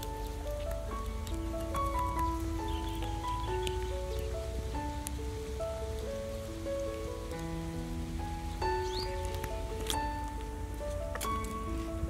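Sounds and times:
campfire crackling: 0.0s - 12.0s
slow music with held notes: 0.0s - 12.0s.

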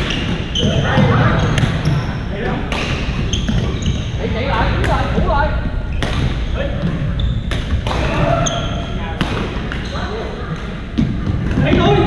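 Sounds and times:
shoes squeaking on floor: 0.0s - 9.0s, 9.6s - 12.0s
murmur of voices: 0.0s - 12.0s
rackets hitting shuttlecocks: 2.6s - 3.7s, 5.9s - 8.6s, 9.2s - 9.9s.

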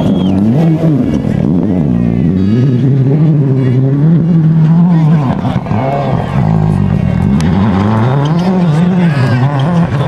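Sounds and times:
rally car engine full throttle: 0.0s - 10.0s.

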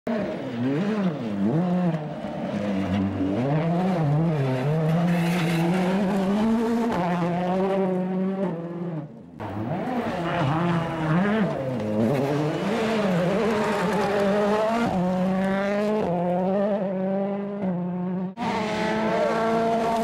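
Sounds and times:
rally car engine revving: 0.1s - 20.0s.

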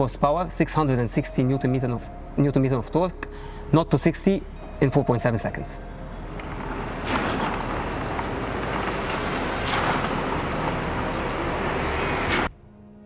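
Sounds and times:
faint music with held tones: 0.0s - 7.2s
rushing vehicle noise: 6.0s - 12.5s.

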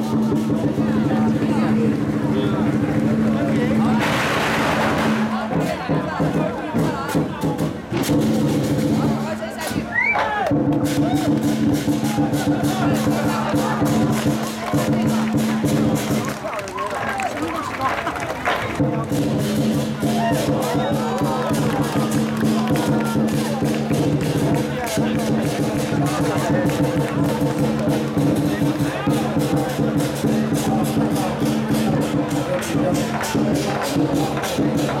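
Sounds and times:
drums beaten rapidly: 0.0s - 16.6s, 18.4s - 35.0s
crowd talking: 0.0s - 35.0s.

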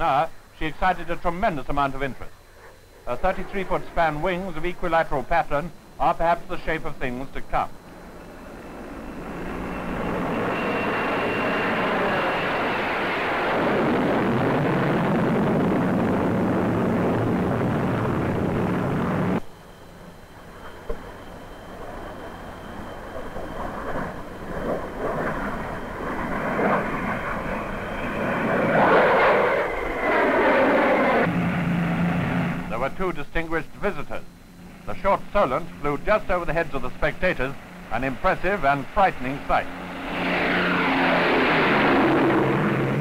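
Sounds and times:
jet flying past: 20.5s - 33.0s, 35.1s - 43.0s.

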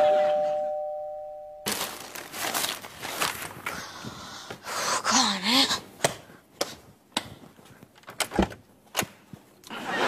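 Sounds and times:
two-tone doorbell chime: 0.0s - 1.7s
rustling: 1.7s - 4.1s.

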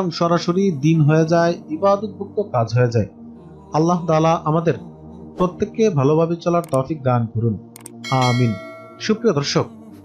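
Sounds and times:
person speaking: 0.0s - 3.1s, 3.8s - 4.8s, 5.4s - 9.8s
mouse click sound effects: 6.6s - 6.9s.

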